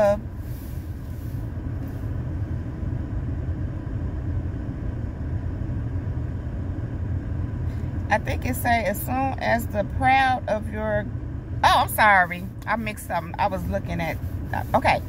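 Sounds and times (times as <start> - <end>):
car engine idling: 0.0 - 15.0.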